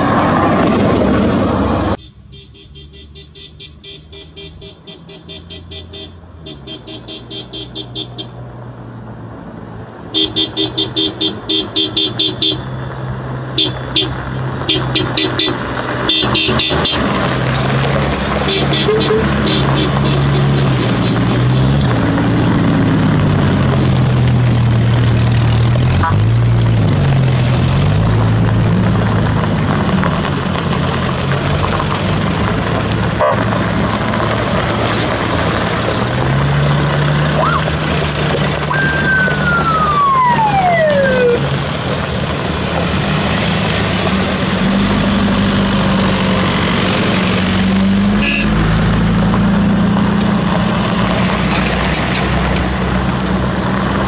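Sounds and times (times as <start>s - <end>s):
truck engines revving: 0.0s - 54.0s
car horns beeping: 2.0s - 8.4s, 10.1s - 12.8s, 13.5s - 17.2s, 18.4s - 21.5s, 37.4s - 39.4s, 48.1s - 48.7s
tyres on gravel: 11.3s - 54.0s.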